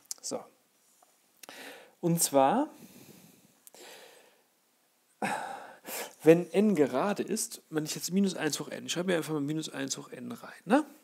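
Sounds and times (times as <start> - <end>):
man breathing in: 1.4 - 2.0, 2.8 - 4.5, 5.2 - 6.2.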